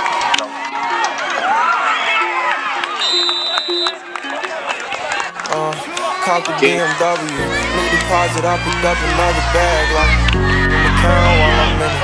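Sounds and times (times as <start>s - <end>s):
hip-hop beat: 0.2s - 12.0s
man's voice: 5.4s - 12.0s.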